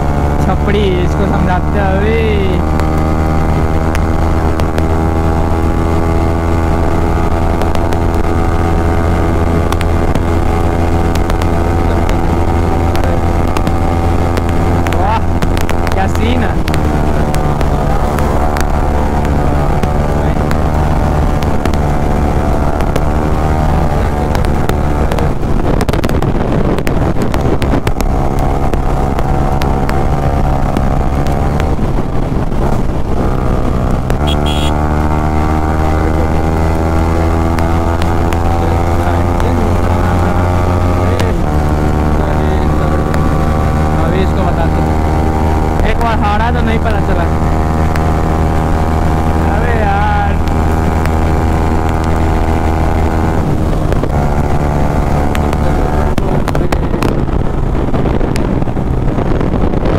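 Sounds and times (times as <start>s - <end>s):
motorcycle engine at high revs: 0.0s - 59.9s
wind rushing past microphone: 1.8s - 59.9s.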